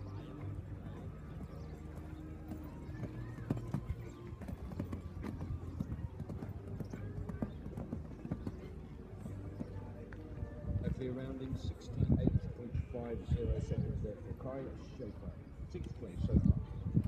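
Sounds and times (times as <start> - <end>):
horse hoofbeats on sand: 0.2 - 10.3.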